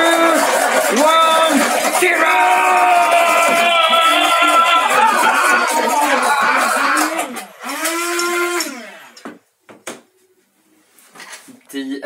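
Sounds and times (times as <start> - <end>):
men cheering: 0.0 - 8.8.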